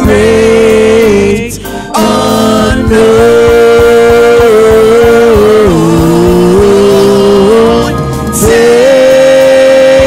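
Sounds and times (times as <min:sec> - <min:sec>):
male vocal trio singing in harmony: 0:00.0 - 0:10.0.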